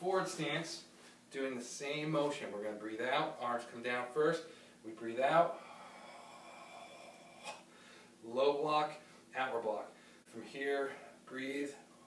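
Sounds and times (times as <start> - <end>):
sharp breath: 5.5 - 8.2
slow controlled exhale: 5.5 - 8.2.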